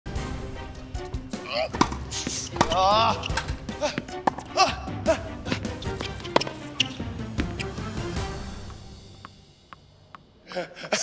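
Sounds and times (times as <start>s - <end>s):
background music: 0.1s - 11.0s
tennis ball strike: 1.8s - 4.5s, 6.0s - 7.7s.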